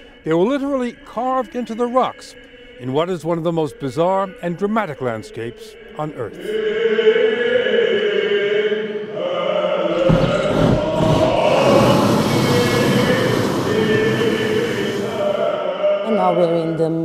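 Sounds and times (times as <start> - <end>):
choral chant music: 0.0 - 17.0
propane burner blast: 9.9 - 15.7.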